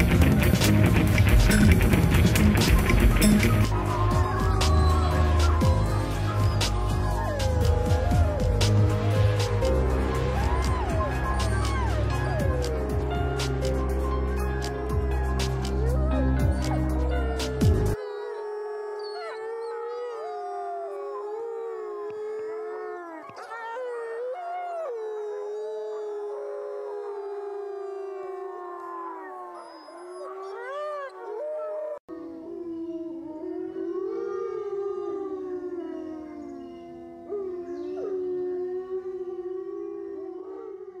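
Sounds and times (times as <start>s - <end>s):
wolves howling in chorus: 1.1s - 41.0s.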